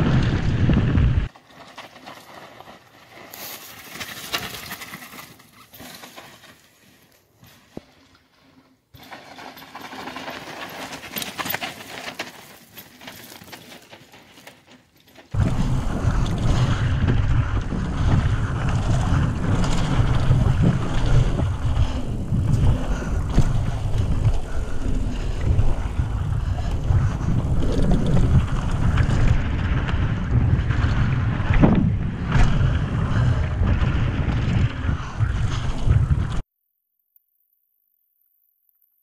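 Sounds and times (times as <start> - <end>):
wind buffeting microphone: 0.0 - 1.3, 15.4 - 36.4.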